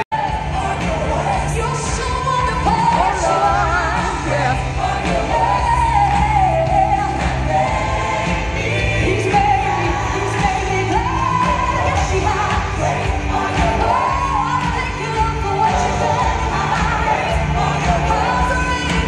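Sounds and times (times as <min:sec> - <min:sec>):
drums: 0:00.0 - 0:19.0
keyboard: 0:00.0 - 0:19.0
lead and backing vocals singing: 0:00.0 - 0:19.0.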